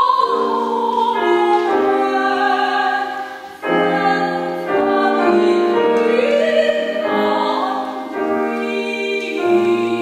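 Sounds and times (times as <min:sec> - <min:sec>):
female opera singer singing: 0:00.0 - 0:10.0
grand piano accompaniment: 0:00.0 - 0:10.0.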